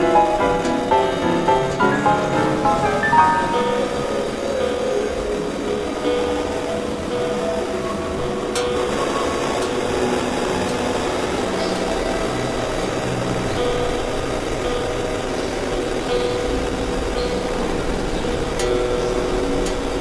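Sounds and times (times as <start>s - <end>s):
experimental electronic noise drone: 0.0s - 20.0s.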